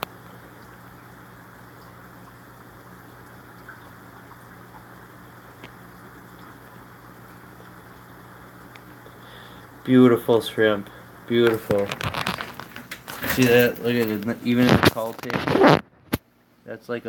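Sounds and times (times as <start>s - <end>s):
aquarium pumps humming and hissing: 0.0s - 17.0s.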